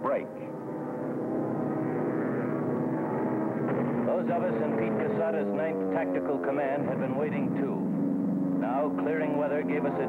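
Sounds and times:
propeller aircraft engines droning: 0.0 - 10.0.

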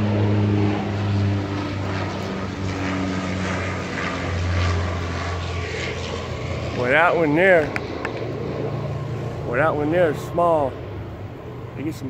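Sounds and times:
small airplane engine drone: 0.0 - 12.0.

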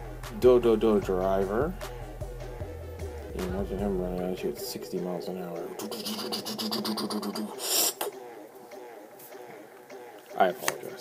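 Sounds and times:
man making buzzing mouth noise: 5.8 - 8.1.

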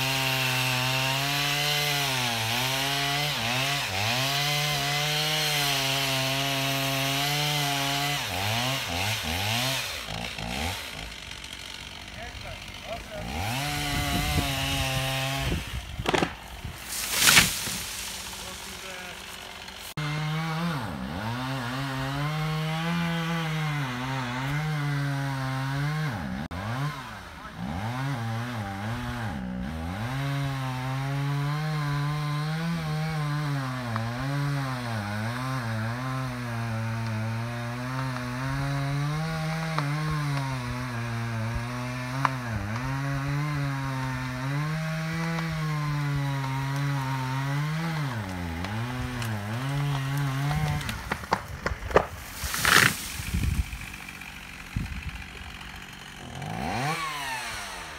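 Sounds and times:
chainsaw cutting wood: 0.0 - 57.9.

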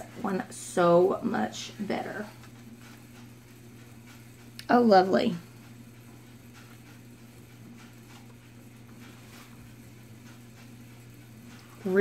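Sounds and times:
low electrical hum: 0.0 - 12.0
paper towel rustling and dabbing: 7.5 - 12.0.

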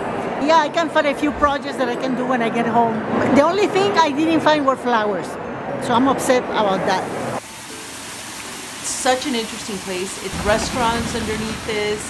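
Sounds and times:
waterfall splashing into pool: 7.4 - 12.0.

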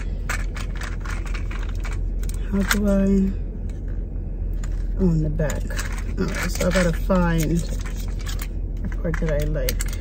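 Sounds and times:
low hum inside car: 0.0 - 10.0.

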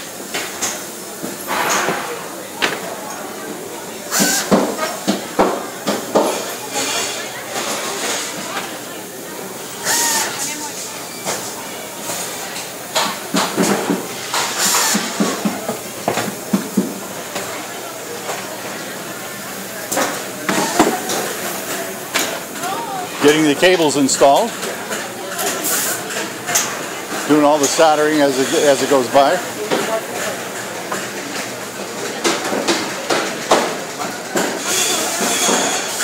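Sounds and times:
workers' voices: 0.0 - 36.0.

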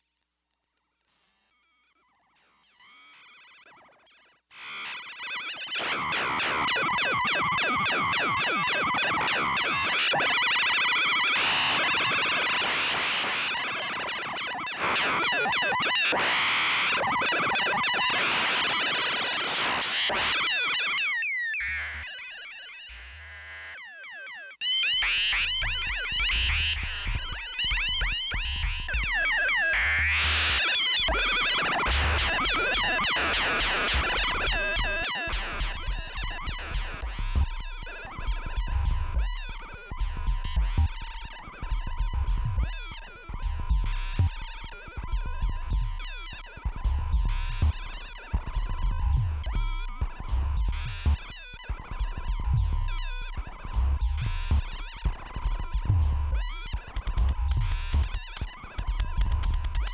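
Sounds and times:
warbling electronic synth tones: 56.9 - 59.9.

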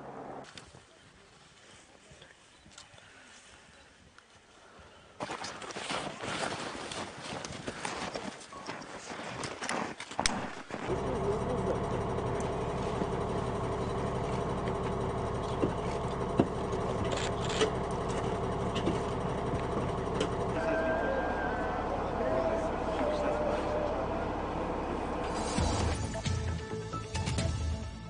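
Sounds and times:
footsteps in deep snow: 5.2 - 10.9
diesel engine idling: 10.5 - 26.2.

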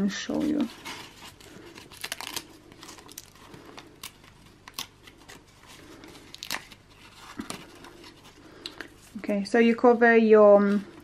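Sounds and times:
paper rustling and crinkling: 0.0 - 11.0
sharp paper crackles: 0.1 - 9.1.

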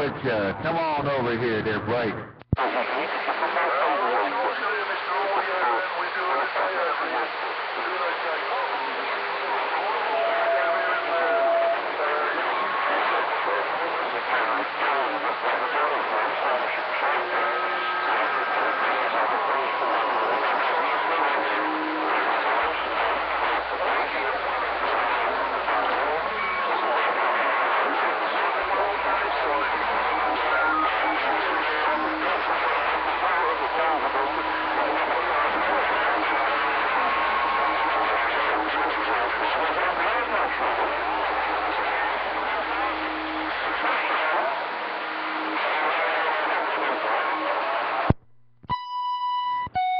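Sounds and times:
garbled radio voices: 0.0 - 48.1
radio static: 0.0 - 48.8.

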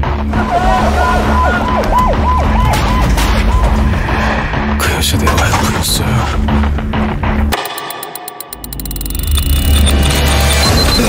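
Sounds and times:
siren yelping: 1.0 - 3.1.

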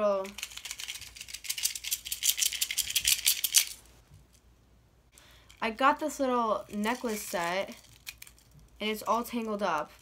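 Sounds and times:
plastic bag crinkling: 6.6 - 10.0.

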